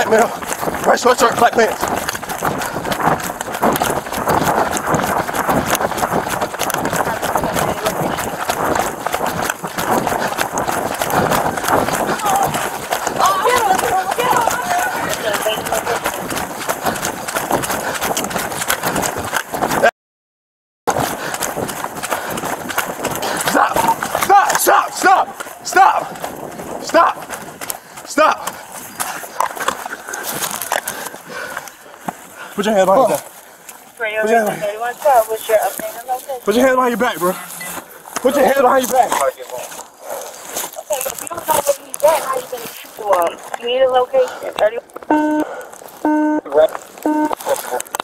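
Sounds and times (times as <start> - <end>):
gear jostling: 0.0 - 19.9, 25.3 - 43.7
running footsteps pounding: 0.0 - 19.9, 20.9 - 48.0.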